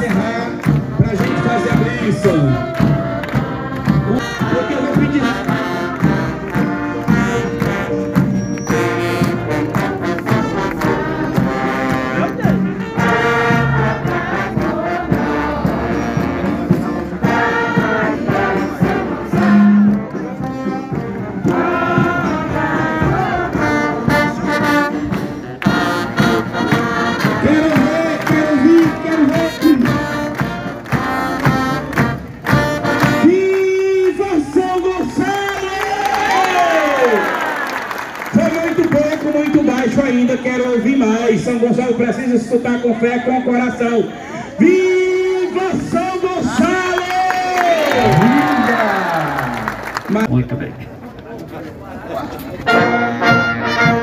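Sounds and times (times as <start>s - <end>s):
brass band playing: 0.0s - 34.1s, 47.6s - 50.3s, 52.6s - 54.0s.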